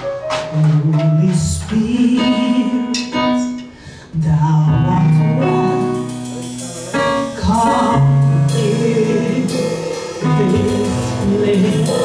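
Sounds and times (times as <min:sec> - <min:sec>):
instrumental accompaniment: 0:00.0 - 0:12.0
woman singing into a microphone: 0:00.5 - 0:05.8, 0:06.8 - 0:12.0.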